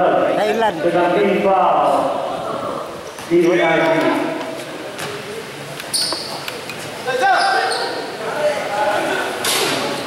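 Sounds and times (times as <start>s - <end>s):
people talking: 0.0s - 5.6s.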